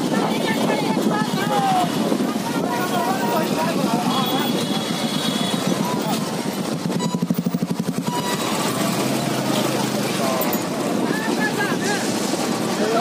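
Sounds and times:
motorcycle engines: 0.0 - 13.0
people's voices: 0.0 - 13.0
rapid pulsing: 0.0 - 13.0.

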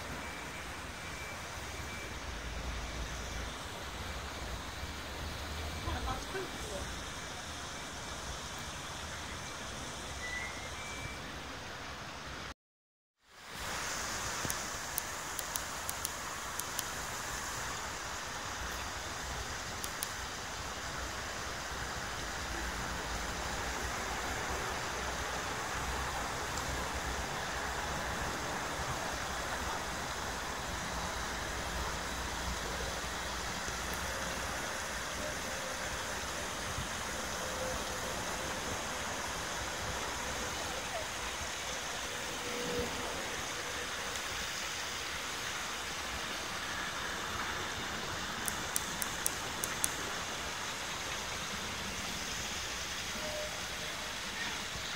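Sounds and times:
city road traffic hum: 0.0 - 12.5, 13.6 - 54.9.

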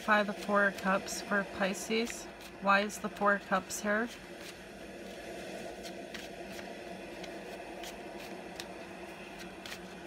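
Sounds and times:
low room hum: 0.0 - 10.0
cards being shuffled: 2.0 - 10.0.

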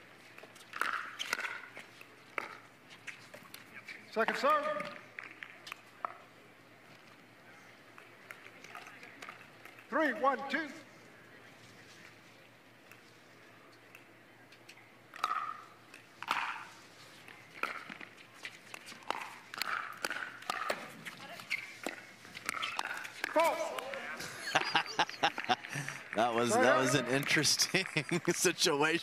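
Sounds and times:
voices: 22.4 - 29.0.

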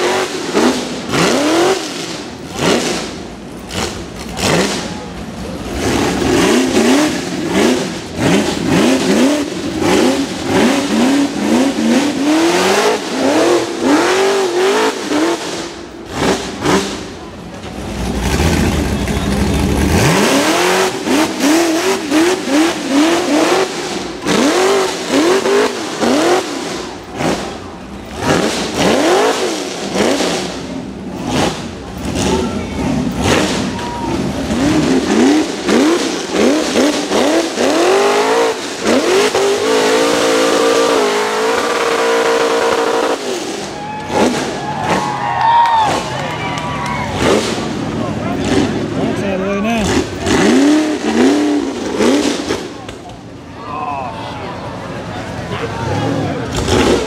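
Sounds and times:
engine revving hard: 0.0 - 53.0, 55.3 - 57.0.

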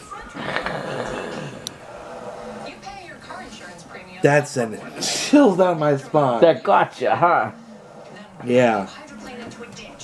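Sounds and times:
quiet voices: 0.0 - 4.1
television sound: 0.0 - 10.0.

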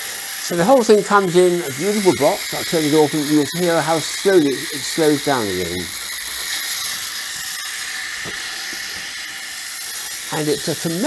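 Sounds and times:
toy gyroscope whirring: 0.0 - 11.0.

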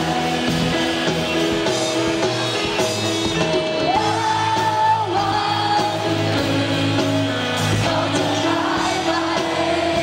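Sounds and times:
live rock band playing: 0.0 - 10.0
woman singing: 3.9 - 10.0.

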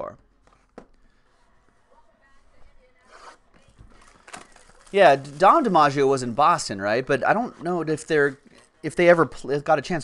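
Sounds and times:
plastic shrink-wrap crinkling and tearing: 3.9 - 6.3.

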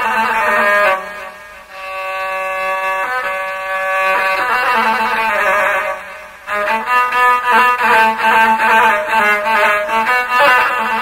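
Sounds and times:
bowed fiddle playing held notes: 0.0 - 11.0.

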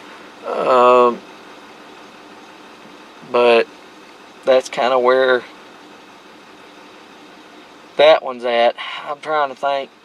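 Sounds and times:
pickup truck engine idling: 0.0 - 10.0
man saying um: 0.4 - 1.2.

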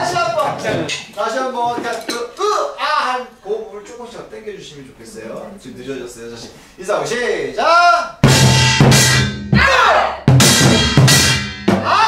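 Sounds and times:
gong and drums struck together: 8.2 - 12.0.

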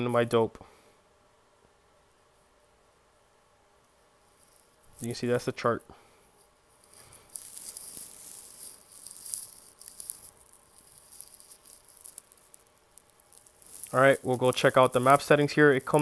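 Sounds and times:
faint rustling hiss: 0.0 - 16.0.

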